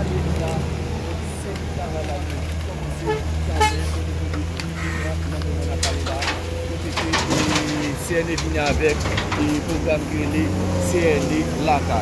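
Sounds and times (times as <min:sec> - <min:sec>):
wheel loader diesel engine: 0:00.0 - 0:12.0.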